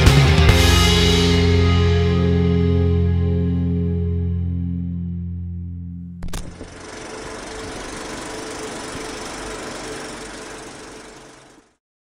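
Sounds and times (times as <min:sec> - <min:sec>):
film projector whirring and clattering: 0:06.2 - 0:11.8.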